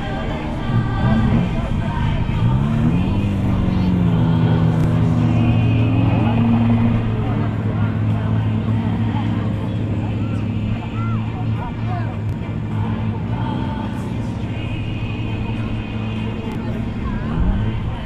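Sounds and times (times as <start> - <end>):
race car engine revving: 0.0 - 18.0.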